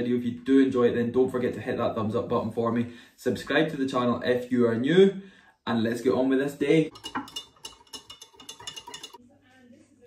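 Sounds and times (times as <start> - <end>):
spoon clinking against glass: 6.9 - 9.2.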